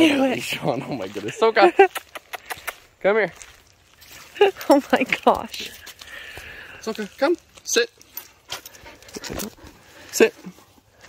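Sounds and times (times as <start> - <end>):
dog panting: 8.2 - 10.9.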